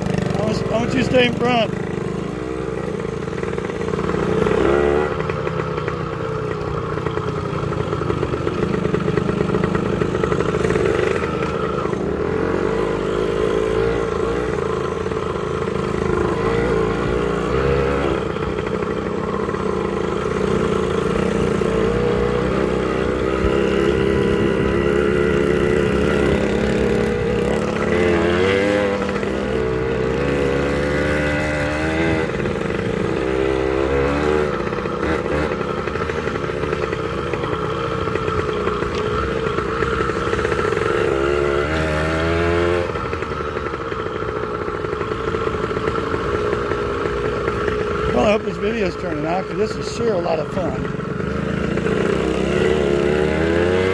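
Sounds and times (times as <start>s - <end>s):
motorcycle engine revving: 0.0s - 53.9s.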